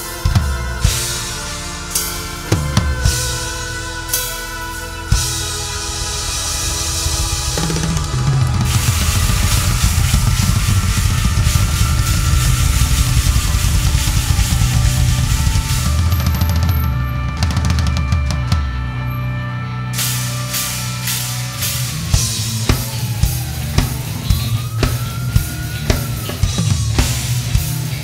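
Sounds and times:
cymbals ringing: 0.0 - 28.0
heavy metal band playing live: 0.0 - 28.0
drum kit hits: 5.1 - 18.4.

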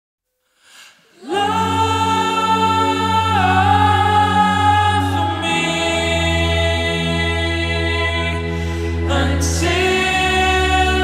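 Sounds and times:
reverb-heavy held vocal note: 0.7 - 11.0.

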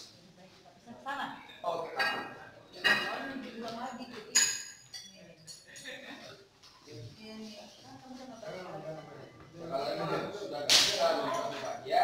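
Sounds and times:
sharp smack: 10.7 - 11.0.

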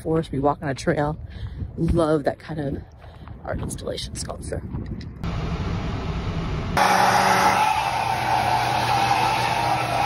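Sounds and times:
hair dryer whirring: 6.8 - 10.0.

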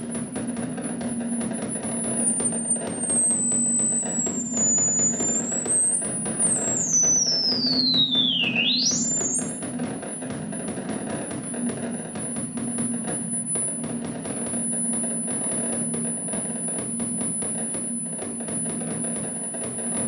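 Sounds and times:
high gliding synth whistle: 2.5 - 9.6.

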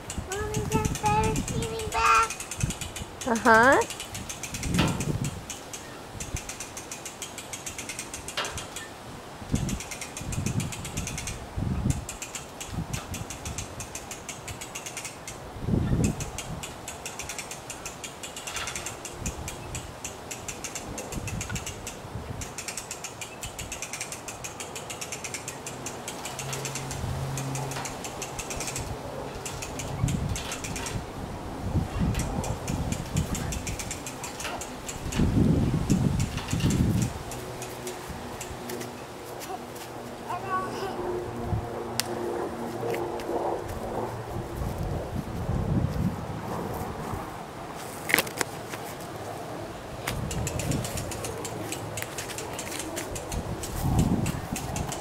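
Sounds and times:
ratchet clicking rapidly: 0.0 - 8.9, 9.5 - 31.0, 32.1 - 38.9, 50.2 - 55.0.

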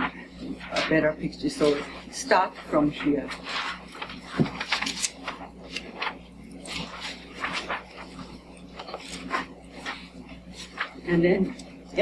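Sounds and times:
low room hum: 0.0 - 12.0
paper rustling and shuffling: 0.0 - 12.0.

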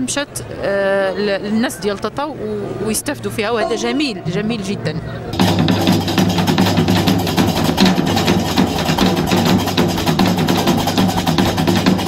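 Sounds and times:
drums and hand percussion: 5.4 - 12.0.

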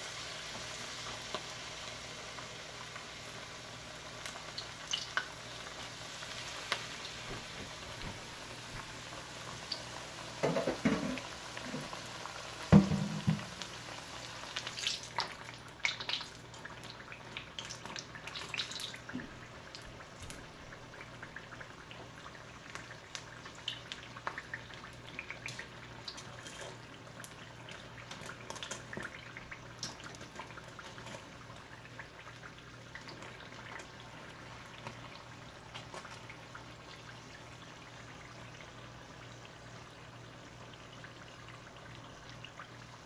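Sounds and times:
deep-frying sizzle with pops: 0.0 - 43.0.

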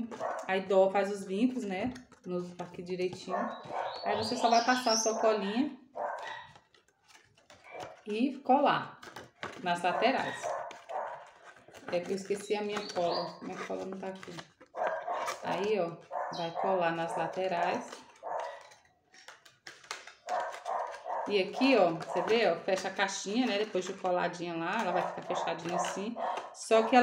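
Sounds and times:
paper box clicks: 9.0 - 16.1, 17.0 - 26.6.

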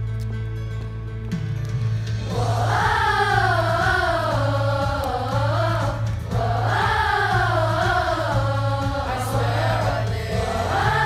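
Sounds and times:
children's chorus singing: 2.3 - 11.0.

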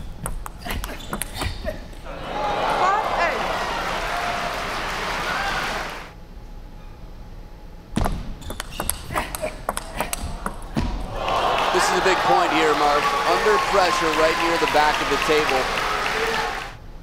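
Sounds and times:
crowd voices: 2.1 - 6.1, 10.3 - 16.8
table tennis ball clicking: 8.4 - 10.7.

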